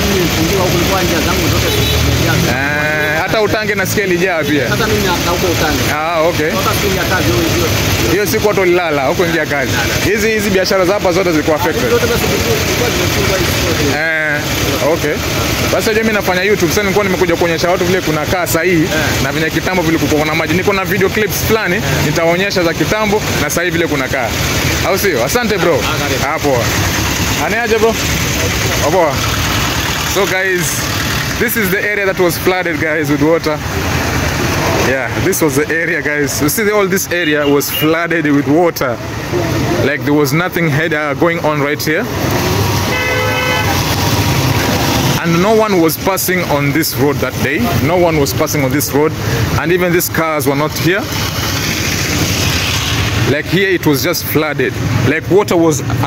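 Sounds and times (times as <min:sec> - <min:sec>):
engine running nearby: 0:00.0 - 0:56.0
men talking: 0:00.0 - 0:56.0
street traffic: 0:00.0 - 0:56.0
vehicle horn toot: 0:01.6 - 0:02.3, 0:37.2 - 0:38.0, 0:42.9 - 0:43.9.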